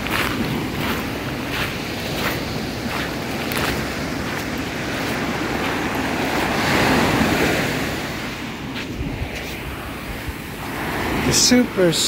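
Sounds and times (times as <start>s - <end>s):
footsteps on pebbly sand: 0.0s - 7.5s, 8.7s - 9.8s
small waves breaking on beach: 0.0s - 12.0s
wind buffeting microphone: 0.0s - 12.0s.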